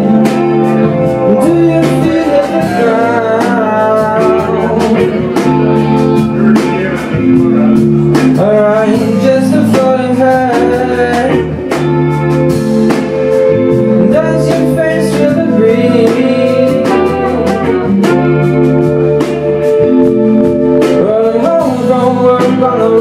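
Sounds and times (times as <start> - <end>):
bass line: 0.0 - 23.0
electric guitar: 0.0 - 23.0
live band playing: 0.0 - 23.0.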